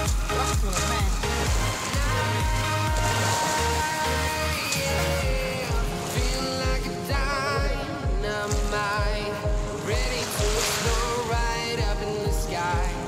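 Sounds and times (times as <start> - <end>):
music with steady low beat: 0.0 - 13.0.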